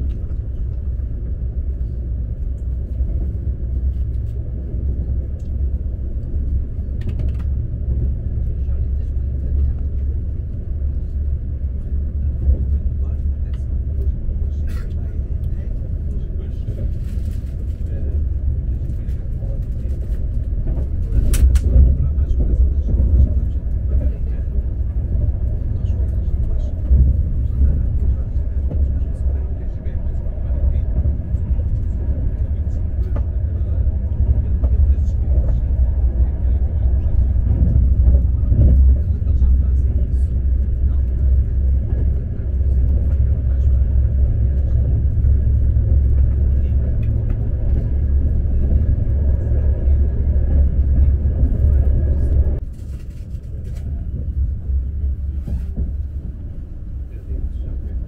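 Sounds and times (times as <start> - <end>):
train running rumble: 0.0 - 58.0.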